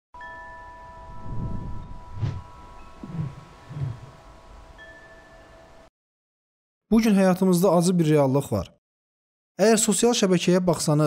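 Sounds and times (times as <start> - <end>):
shimmering chime tones: 0.2 - 5.9
soft low swells: 1.1 - 4.6.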